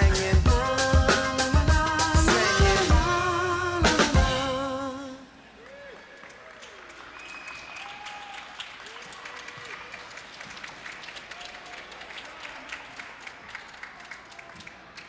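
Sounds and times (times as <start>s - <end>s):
audience applause: 5.6s - 15.0s.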